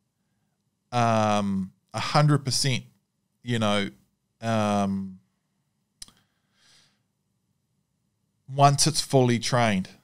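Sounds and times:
faint breath-like hiss: 0:06.1 - 0:07.1.

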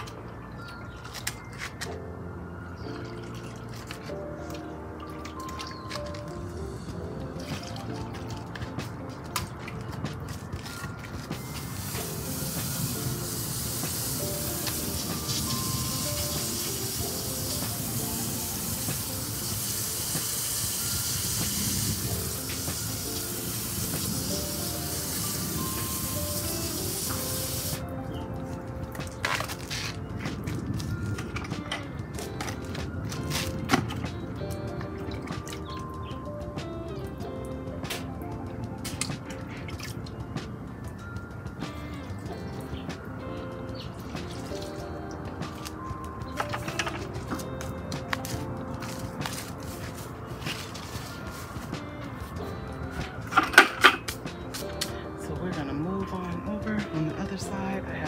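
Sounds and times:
background music with steady beat: 0:00.0 - 0:58.0
hose spraying water: 0:07.4 - 0:27.9, 0:44.2 - 0:52.4.

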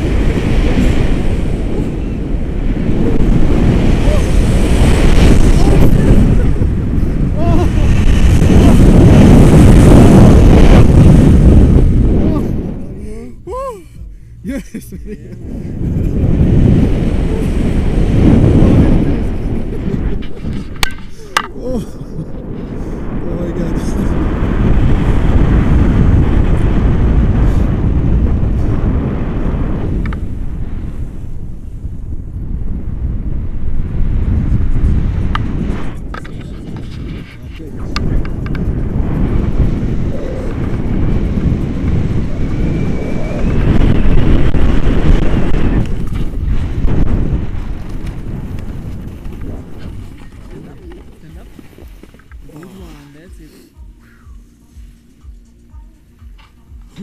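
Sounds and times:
wind buffeting microphone: 0:00.0 - 0:57.0.

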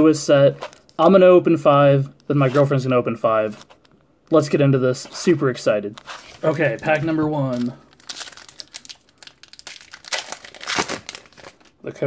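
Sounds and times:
foil wrapper crinkling: 0:06.3 - 0:11.8
foil wrapper tearing: 0:07.4 - 0:11.7.

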